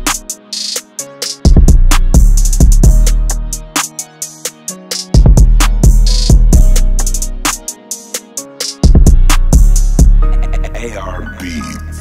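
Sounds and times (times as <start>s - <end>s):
drum machine hi-hats and snares: 0.0s - 10.3s.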